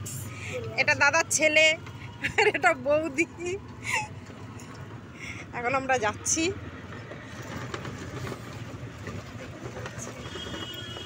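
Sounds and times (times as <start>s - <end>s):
vehicle rattling over road: 0.2s - 11.0s.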